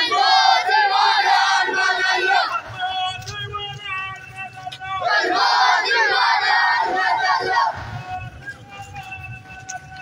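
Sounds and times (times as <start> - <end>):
crowd shouting a chant: 0.0 - 10.0.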